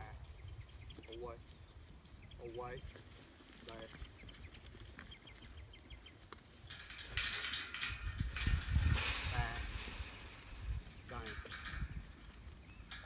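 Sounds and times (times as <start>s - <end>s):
hooves scuffling: 0.0s - 13.0s
metal pen panels rattling: 6.7s - 12.1s.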